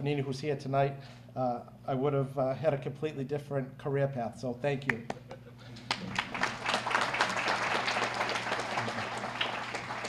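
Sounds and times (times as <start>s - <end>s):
audience applauding: 5.8s - 10.0s.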